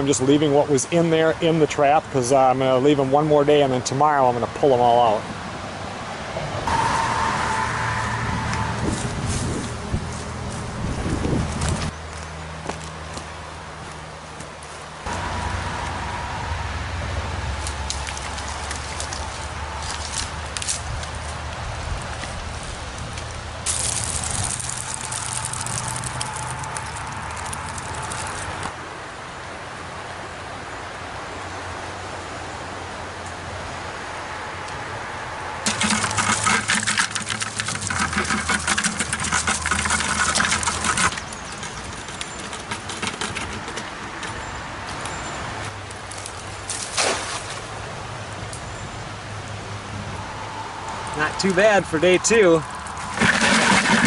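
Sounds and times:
river water running and splashing: 11.3s - 34.2s, 35.6s - 42.8s, 44.6s - 49.8s.

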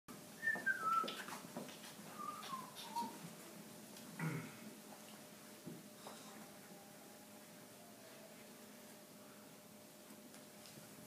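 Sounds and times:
person whistling falling notes: 0.4s - 1.3s, 2.1s - 3.2s.

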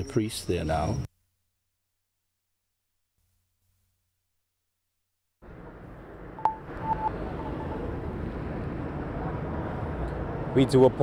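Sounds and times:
short beeps: 6.4s - 7.9s.

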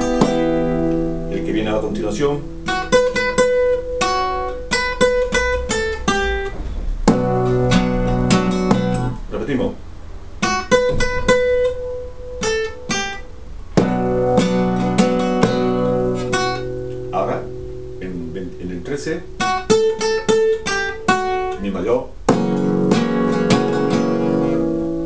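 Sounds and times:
acoustic guitar rumba melody: 0.0s - 25.0s.

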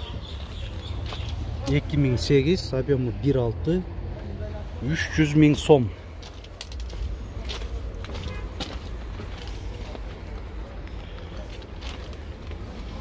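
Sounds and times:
footsteps on gravel: 0.4s - 1.5s, 6.1s - 13.0s.

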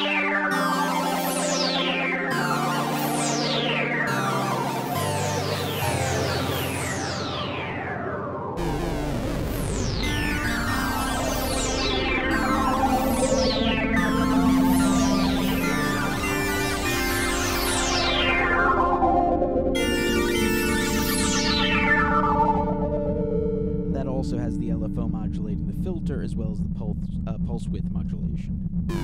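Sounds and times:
synthesizer chords with sweeps: 0.0s - 29.0s.

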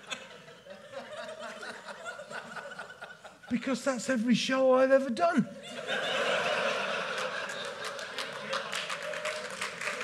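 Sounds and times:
audience laughing: 0.0s - 3.6s, 5.6s - 9.4s
scattered clapping: 7.6s - 10.0s.

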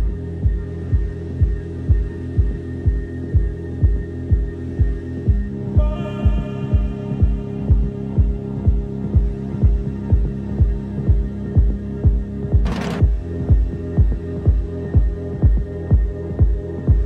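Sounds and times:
kick drum beat: 0.0s - 17.0s
synth chords: 0.0s - 17.0s.

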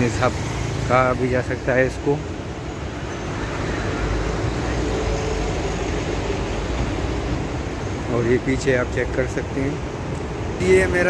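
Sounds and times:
rumble of passing cars: 0.0s - 11.0s.

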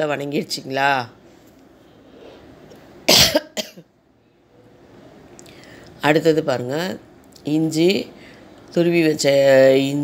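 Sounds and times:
person coughing: 3.1s - 3.9s.

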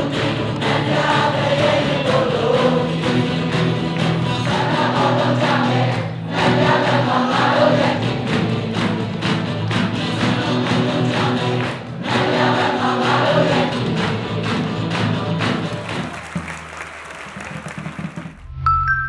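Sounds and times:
group singing along: 0.0s - 15.6s
acoustic guitars strummed: 0.0s - 16.1s.

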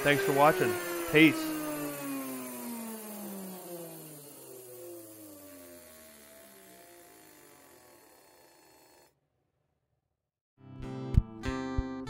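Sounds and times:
small motor whine falling in pitch: 0.0s - 9.1s.

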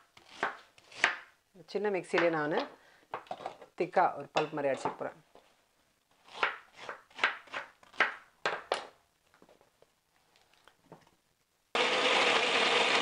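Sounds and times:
mixer grinder running: 11.8s - 13.0s.

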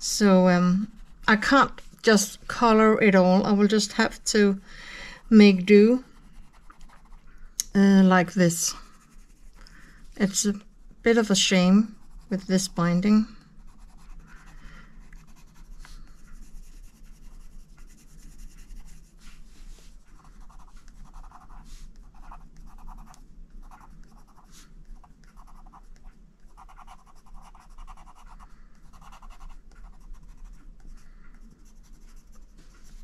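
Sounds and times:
coloured pencil scratching on paper: 0.2s - 1.8s, 5.2s - 7.3s, 8.2s - 9.6s, 11.1s - 13.0s, 13.6s - 33.0s.

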